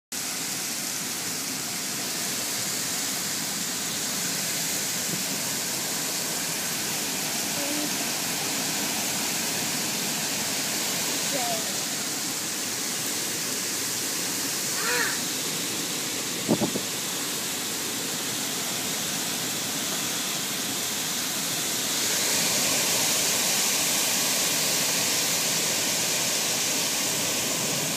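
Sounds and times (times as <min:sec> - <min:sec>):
heavy rain pouring: 0:00.1 - 0:27.9
faint voice: 0:07.6 - 0:08.0, 0:14.8 - 0:15.2.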